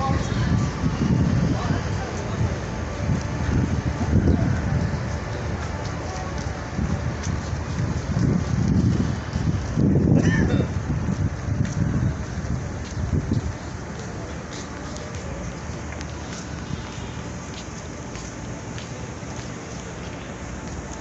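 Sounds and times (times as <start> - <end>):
wind buffeting microphone: 0.0 - 18.8
people's voices: 0.0 - 21.0.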